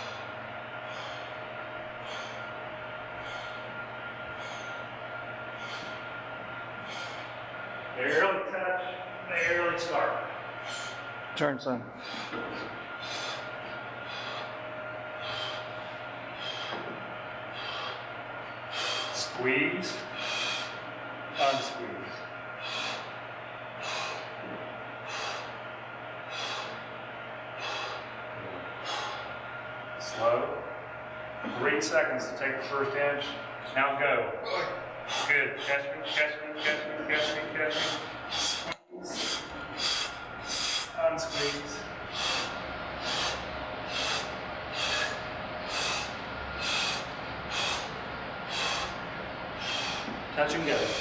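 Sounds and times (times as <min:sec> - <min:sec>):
man breathing hard: 0:00.0 - 0:08.3, 0:09.0 - 0:32.0, 0:34.4 - 0:51.0.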